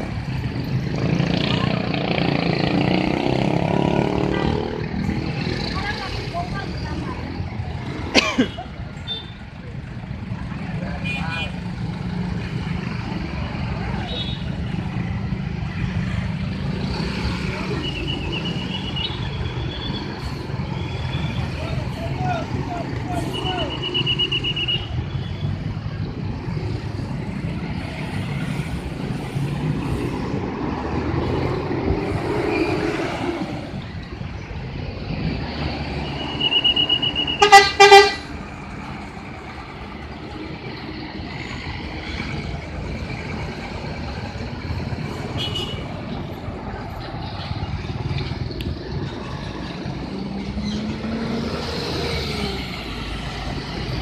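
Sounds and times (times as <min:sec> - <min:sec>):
street traffic: 0:00.0 - 0:54.0
bus horn blasts: 0:36.4 - 0:38.3.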